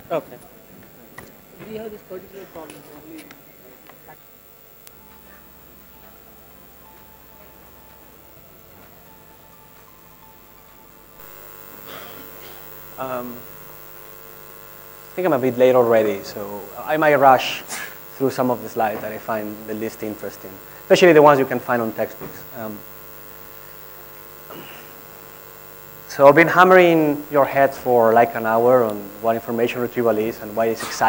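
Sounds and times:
faint background music: 0.0 - 13.5, 14.5 - 22.8, 26.1 - 31.0
mains hum and hiss: 0.0 - 31.0.

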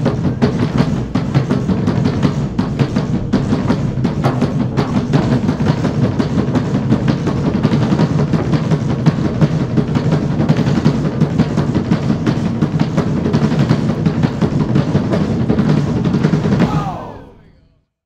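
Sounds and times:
drum band playing: 0.0 - 17.6.

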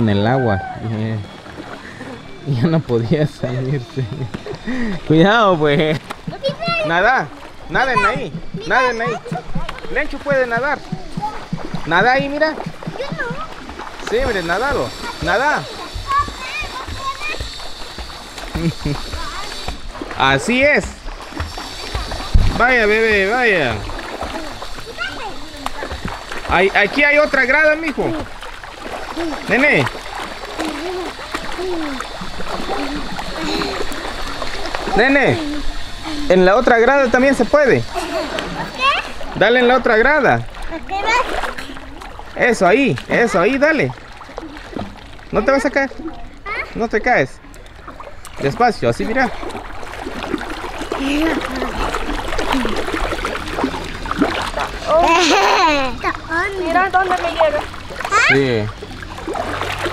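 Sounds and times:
water splashing from wading: 0.0 - 59.9.

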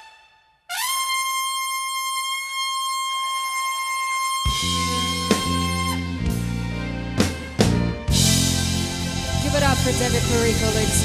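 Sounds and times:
trumpet holding high note: 0.0 - 11.0.

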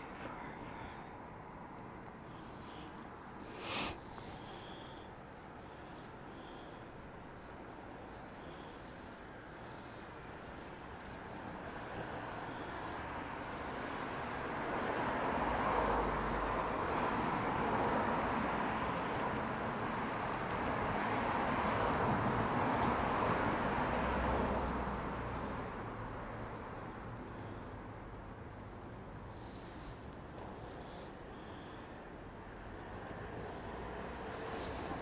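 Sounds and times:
street traffic rush: 0.0 - 35.0.

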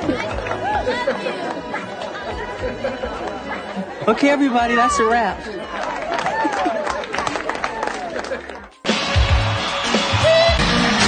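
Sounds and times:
murmur of voices: 0.0 - 8.8.

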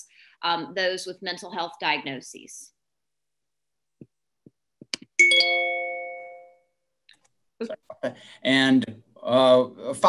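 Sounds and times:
two-note chime: 5.2 - 6.6.

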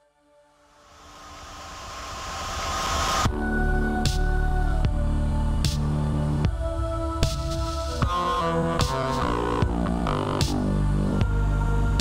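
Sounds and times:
faint sustained tones: 0.3 - 12.0
white-noise sweep: 0.6 - 11.2.

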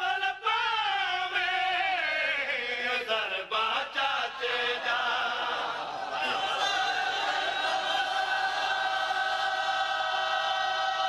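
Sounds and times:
man reciting lead chant: 0.0 - 6.5
men chanting devotional song: 0.0 - 11.0.

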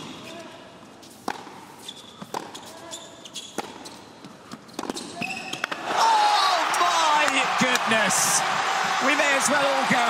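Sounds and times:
shoes squeaking on hard court: 0.0 - 5.7
rackets hitting tennis ball: 1.0 - 5.8
crowd roaring: 5.8 - 10.0.

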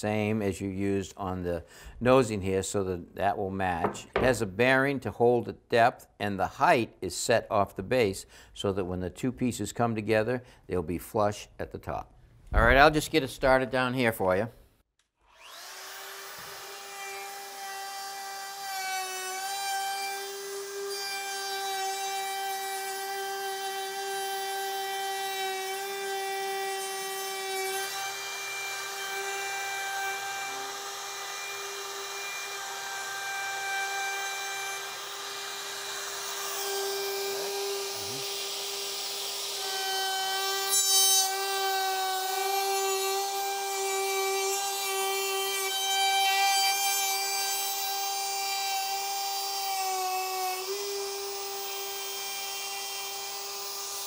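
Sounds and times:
router motor whine: 15.2 - 25.4, 27.4 - 54.0
router bit chewing wood: 15.3 - 54.0.

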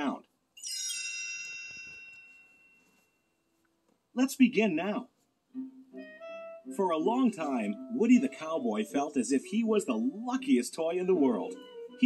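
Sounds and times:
bell-like chime: 0.6 - 3.4.

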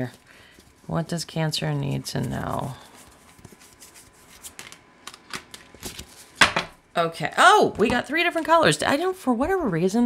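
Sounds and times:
cards rubbing: 2.1 - 6.4.

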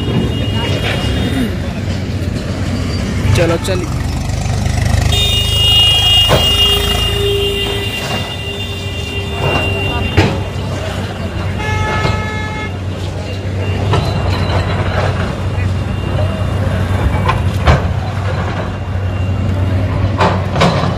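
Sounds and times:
people's voices: 0.0 - 4.2, 5.2 - 20.4
diesel engine running: 0.0 - 20.9
vehicle horn: 5.1 - 10.8, 11.4 - 12.8.

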